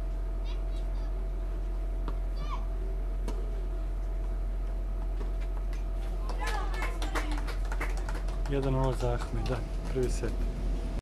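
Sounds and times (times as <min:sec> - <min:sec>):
steady low hum: 0:00.0 - 0:11.0
voices: 0:06.0 - 0:10.4.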